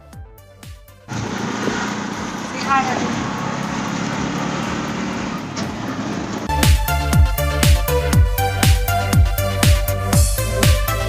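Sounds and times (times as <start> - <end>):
auto-rickshaw engine and road noise: 1.1 - 6.6.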